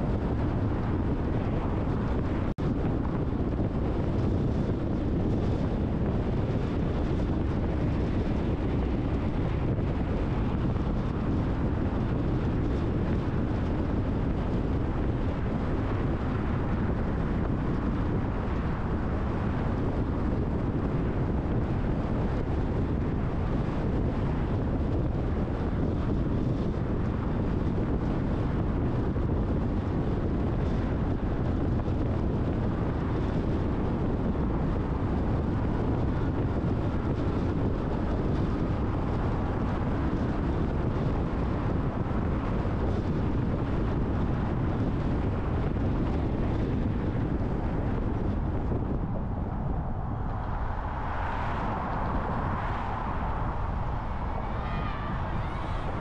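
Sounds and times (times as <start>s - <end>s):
car tyre and engine rumble: 0.0s - 56.0s
wind noise: 0.0s - 56.0s.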